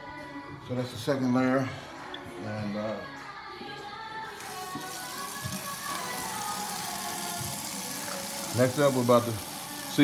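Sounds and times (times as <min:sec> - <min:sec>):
background music: 0:00.0 - 0:10.0
tap water running into colander: 0:04.4 - 0:10.0.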